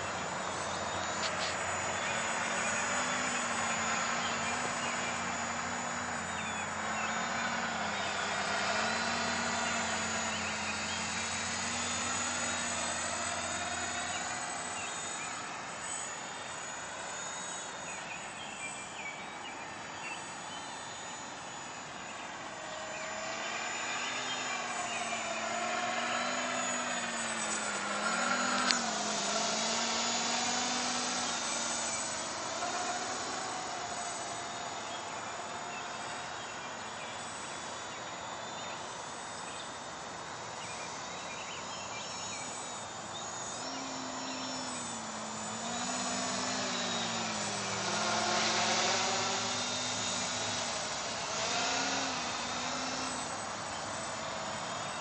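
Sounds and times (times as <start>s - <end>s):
quadcopter propellers whining: 0.0s - 55.0s.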